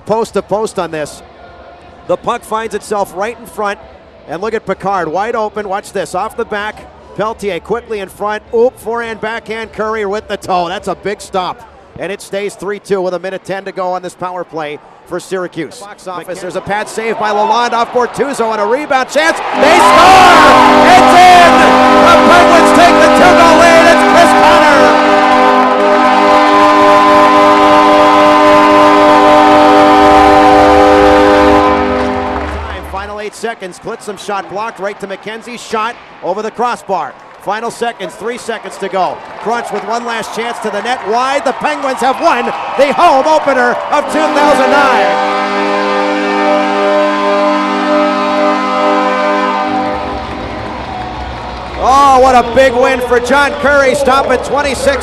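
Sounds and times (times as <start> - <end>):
crowd cheering and clapping: 16.6 - 27.3, 31.4 - 33.2, 37.1 - 45.5, 49.6 - 55.0
goal horn blaring: 19.4 - 32.9, 42.0 - 55.0.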